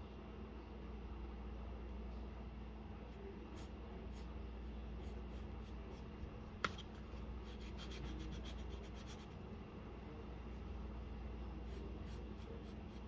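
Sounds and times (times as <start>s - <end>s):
low steady hum: 0.0s - 13.0s
pencil scratching on paper: 5.0s - 6.8s, 7.4s - 9.4s, 11.6s - 13.0s.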